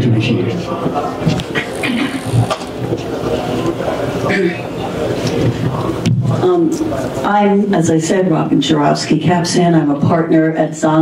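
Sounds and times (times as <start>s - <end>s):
microphone handling noise: 1.2s - 3.2s.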